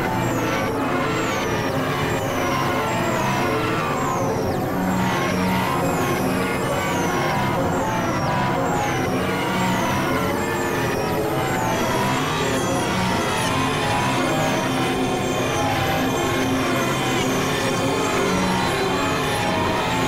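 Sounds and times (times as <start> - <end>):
layered synth drone: 0.0 - 20.0.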